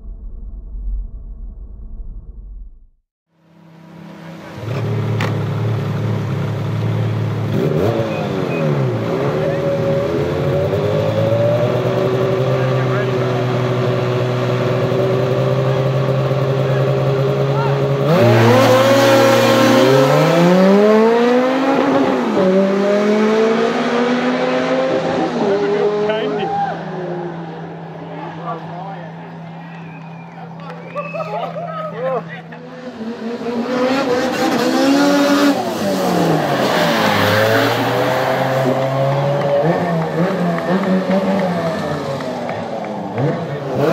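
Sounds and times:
snowmobile engine: 3.8s - 27.4s, 32.0s - 43.9s.

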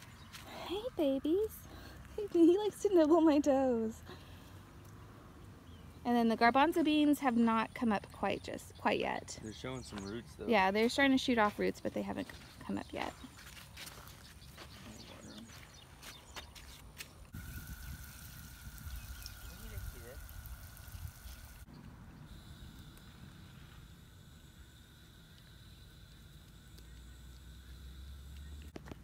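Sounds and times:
hose nozzle spray hissing: 17.4s - 21.7s.

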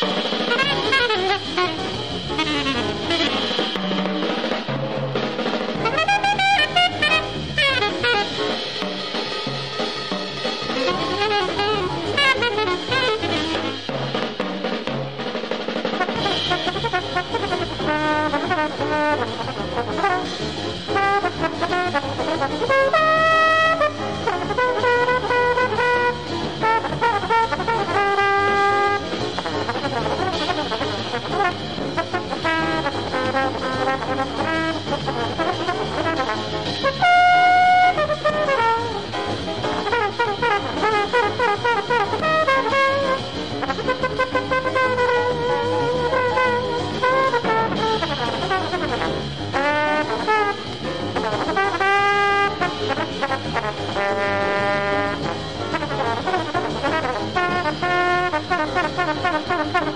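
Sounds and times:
trombone playing: 0.0s - 4.4s, 5.7s - 14.4s, 15.9s - 59.9s
walking bass: 0.0s - 15.3s, 16.0s - 59.9s
brass horn jazz melody: 0.0s - 59.9s
drums: 0.0s - 59.9s.

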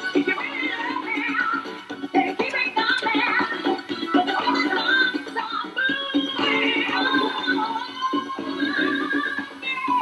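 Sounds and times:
song with singing voice: 0.0s - 10.0s.

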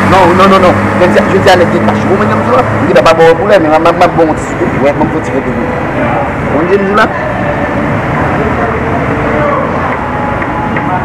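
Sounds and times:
faint voices: 0.0s - 11.0s
low traffic rumble: 0.0s - 11.0s.

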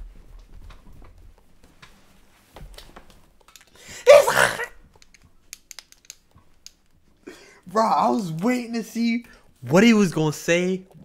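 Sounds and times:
man's vocal outburst: 3.9s - 4.8s
faint clicks: 4.9s - 7.0s.

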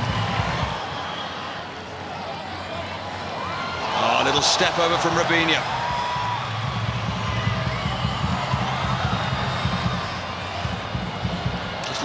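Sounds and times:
stadium crowd hum of voices: 0.0s - 12.0s.

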